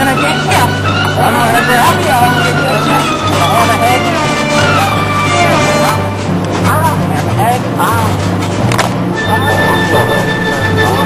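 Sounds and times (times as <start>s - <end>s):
sliding wavering melody: 0.0s - 6.5s, 9.1s - 11.0s.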